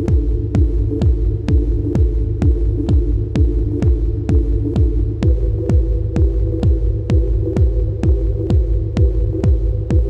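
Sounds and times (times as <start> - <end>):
kick drum beats: 0.0 - 10.0.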